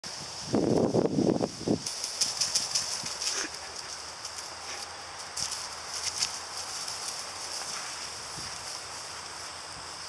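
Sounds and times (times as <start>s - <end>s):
footsteps through long grass: 0.1s - 10.0s.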